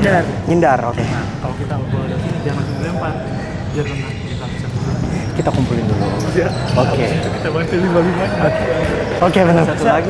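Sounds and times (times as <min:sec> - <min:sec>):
chatter of players: 0:00.0 - 0:10.0
man talking: 0:00.0 - 0:10.0.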